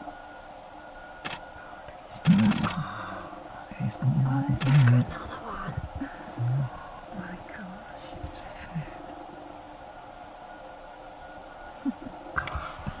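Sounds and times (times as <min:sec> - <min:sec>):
steady background hiss: 0:00.0 - 0:13.0
hushed whispering voices: 0:02.1 - 0:09.2, 0:11.9 - 0:13.0.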